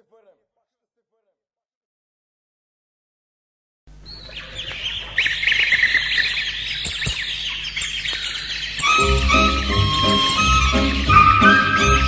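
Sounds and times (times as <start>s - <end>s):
canaries twittering and trilling: 4.0s - 12.0s.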